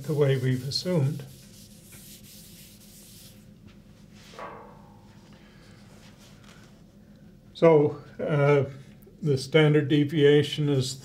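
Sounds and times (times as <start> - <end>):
eraser swishing on whiteboard: 0.0 - 3.5.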